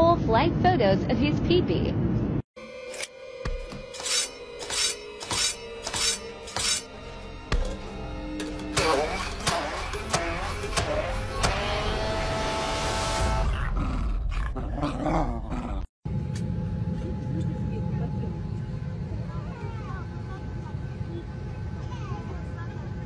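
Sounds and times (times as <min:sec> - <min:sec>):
background music: 0:02.6 - 0:13.5
immersion blender running: 0:08.8 - 0:13.4.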